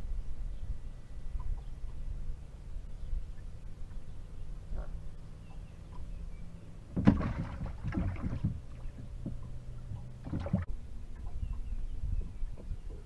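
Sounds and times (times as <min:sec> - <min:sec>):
low steady hum: 0:00.0 - 0:13.0
waves slapping boat hull: 0:06.9 - 0:11.4.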